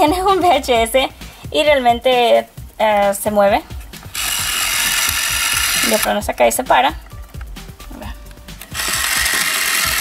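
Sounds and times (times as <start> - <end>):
rapid even clicking mechanism: 4.2 - 6.2, 8.6 - 10.0.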